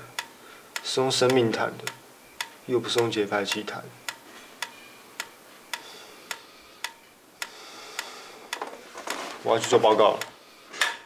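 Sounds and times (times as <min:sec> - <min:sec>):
mechanical metronome ticking: 0:00.0 - 0:08.7, 0:09.5 - 0:10.4.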